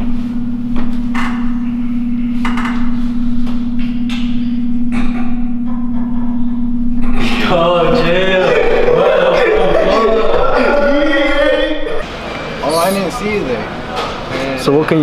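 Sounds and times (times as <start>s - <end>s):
loud steady low hum: 0.0s - 14.9s
voice with wavering pitch: 3.9s - 13.3s.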